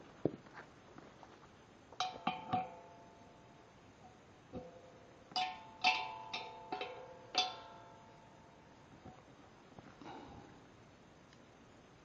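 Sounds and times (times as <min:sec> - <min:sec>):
wrench clinking on steel: 0:05.4 - 0:08.2.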